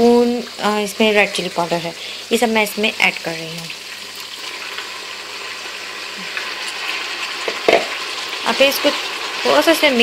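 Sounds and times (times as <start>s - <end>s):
meat sizzling in hot oil: 0.0s - 10.0s.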